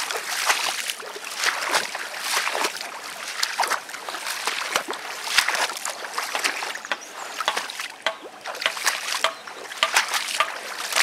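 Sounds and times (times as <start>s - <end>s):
water splashing and sloshing: 0.0s - 11.0s.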